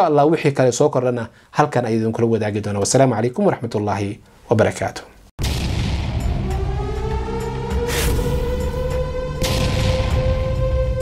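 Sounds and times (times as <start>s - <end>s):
heavy boom: 5.4s - 11.0s
soundtrack music with low rumble: 5.4s - 11.0s.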